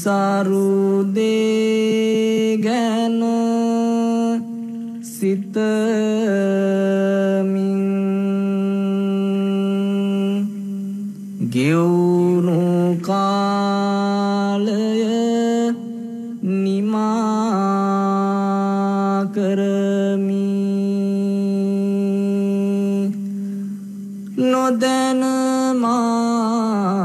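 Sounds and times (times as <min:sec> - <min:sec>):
person chanting in long held notes: 0:00.0 - 0:27.0.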